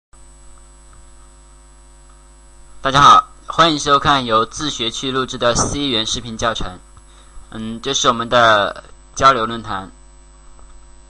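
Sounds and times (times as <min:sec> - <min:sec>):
electrical hum: 0:00.2 - 0:11.0
high-pitched whine: 0:01.1 - 0:10.2.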